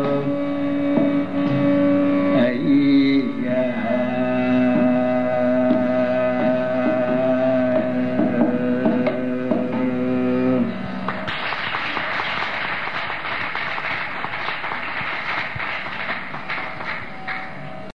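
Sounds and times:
audience applause: 11.1s - 17.6s.

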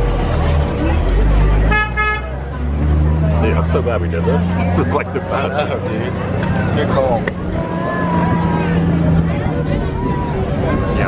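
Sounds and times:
bus engine rumble: 0.0s - 11.0s
bus horn toots: 1.6s - 2.4s.

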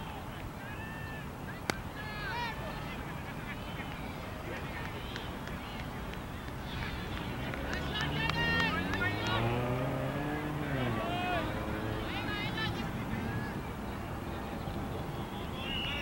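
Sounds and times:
distant voices and chatter: 0.0s - 16.0s
vehicle engine passing by: 6.8s - 13.7s.

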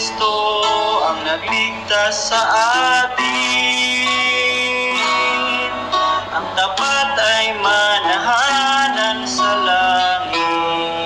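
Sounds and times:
instrumental accompaniment: 0.0s - 11.0s
worship song singing: 0.0s - 11.0s.

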